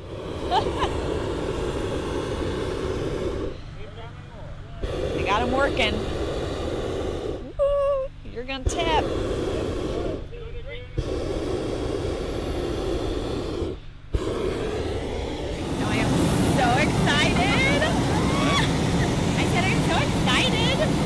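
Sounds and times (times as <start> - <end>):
propane burner firing: 0.0 - 21.0
people's voices: 15.4 - 21.0.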